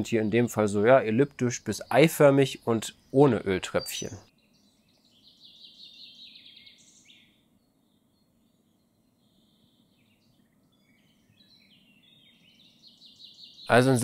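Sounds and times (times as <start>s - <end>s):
faint low background noise: 0.0s - 14.0s
songbird chirping: 0.0s - 14.0s.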